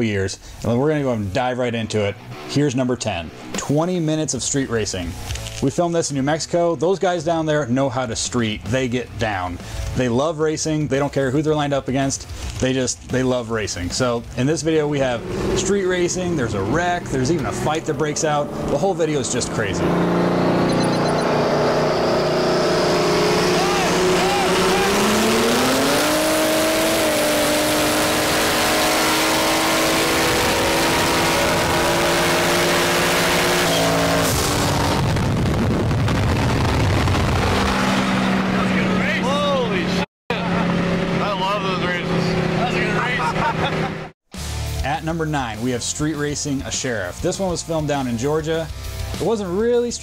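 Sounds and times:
voices: 12.8 - 19.9, 23.4 - 25.1, 38.6 - 43.8
car engine drone accelerating: 13.6 - 44.2
broad rushing noise: 14.7 - 20.3, 22.6 - 32.2.

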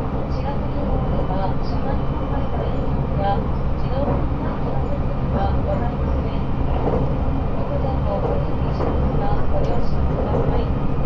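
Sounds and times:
train running noise: 0.0 - 11.0.

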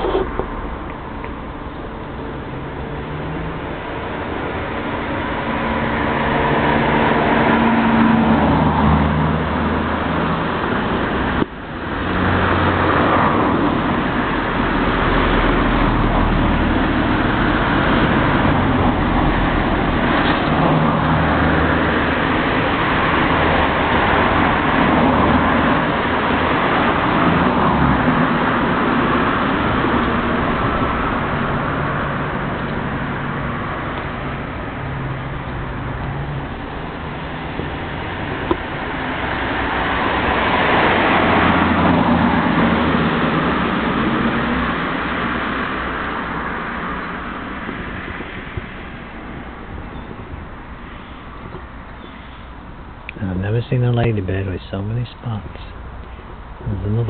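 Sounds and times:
road traffic: 0.0 - 57.0.

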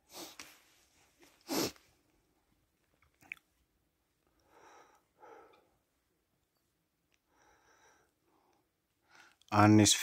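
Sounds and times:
sharp sniff: 0.1 - 0.6, 1.4 - 1.8
person breathing: 4.3 - 5.9, 7.2 - 9.4.

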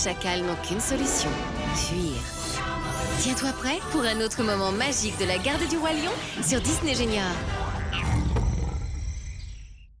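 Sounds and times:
cartoon lion roar: 7.7 - 9.2.

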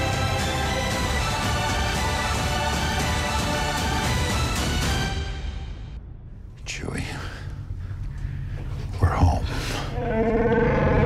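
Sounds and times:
steady low rumble: 5.9 - 10.0.

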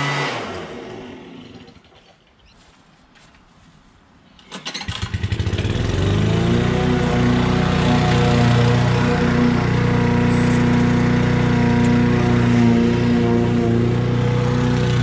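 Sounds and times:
lawn mower engine: 0.0 - 2.1, 4.4 - 15.0.

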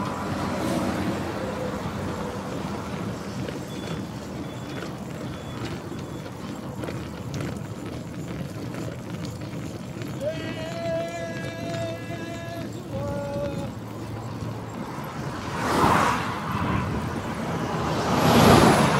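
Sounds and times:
bicycle road noise: 0.0 - 18.9
wind rush on microphone: 10.2 - 18.9.

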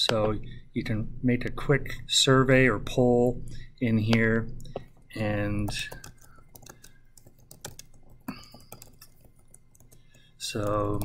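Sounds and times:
typing on computer keyboard: 4.1 - 11.0.

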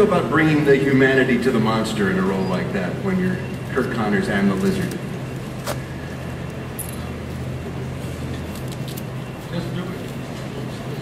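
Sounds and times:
hall room noise hum: 0.0 - 11.0.

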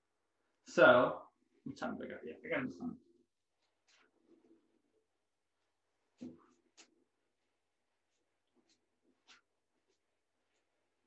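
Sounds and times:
marker strokes on a whiteboard: 6.1 - 11.0.

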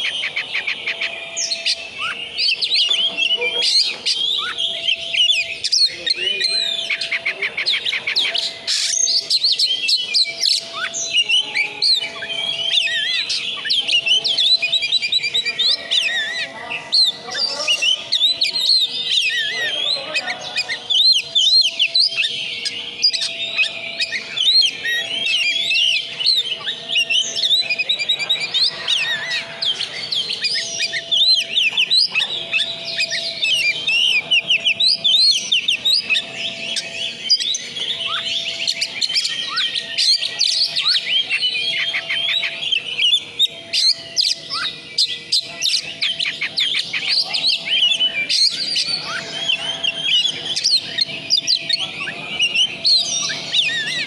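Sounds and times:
songbird singing whistles and trills: 0.0 - 54.0.

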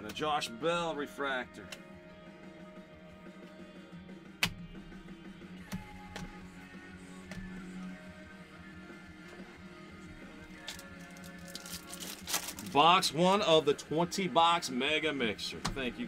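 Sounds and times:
quiet background music: 0.0 - 16.0.

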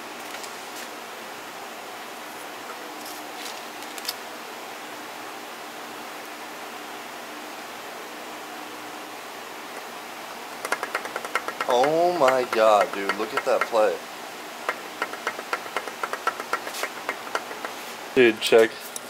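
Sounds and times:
faint steady hum: 0.0 - 19.0
steady background hiss: 0.0 - 19.0.

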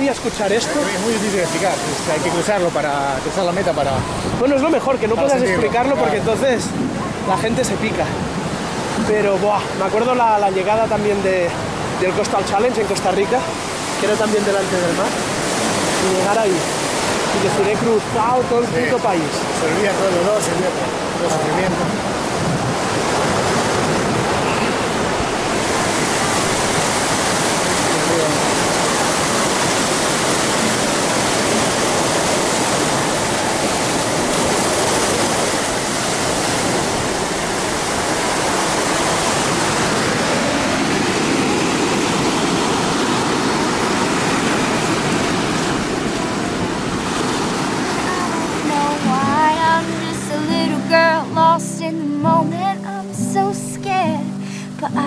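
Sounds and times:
ocean surf breaking on beach: 0.0 - 55.0
music: 49.0 - 55.0.

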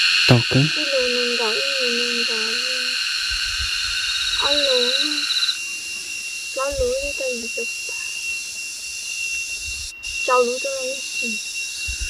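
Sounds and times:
insects buzzing: 0.0 - 12.0
person's voice: 0.3 - 3.0, 4.4 - 5.2, 6.6 - 7.8, 10.3 - 11.4
thin high tone: 0.3 - 3.0.

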